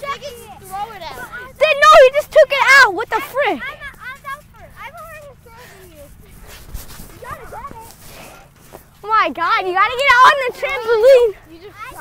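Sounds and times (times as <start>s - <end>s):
distant kids calling out: 0.0s - 12.0s.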